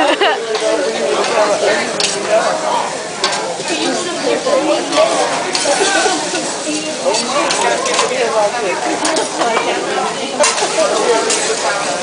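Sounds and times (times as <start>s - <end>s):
metal spatula stirring: 0.5s - 2.6s, 3.2s - 4.0s, 4.8s - 8.2s, 10.4s - 11.9s
vegetables sizzling on a griddle: 1.5s - 8.1s.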